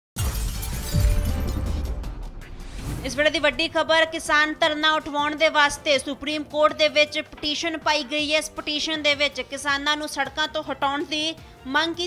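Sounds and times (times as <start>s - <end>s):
glass shattering: 0.2s - 1.9s
deep low hit: 0.2s - 3.9s
news intro music: 0.2s - 11.7s.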